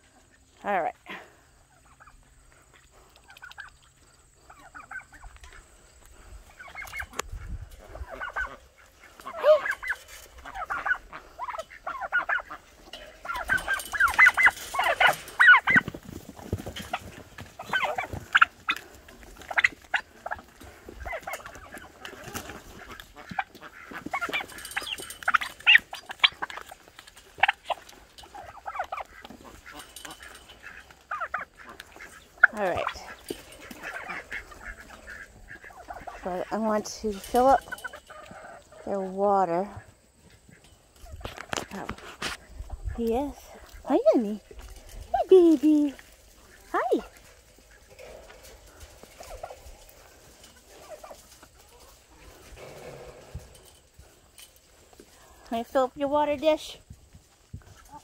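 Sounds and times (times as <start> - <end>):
turkeys calling: 1.4 - 58.0.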